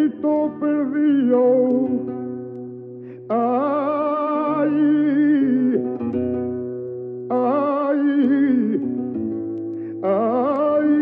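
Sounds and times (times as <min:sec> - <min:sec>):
guitar notes: 0:00.0 - 0:11.0.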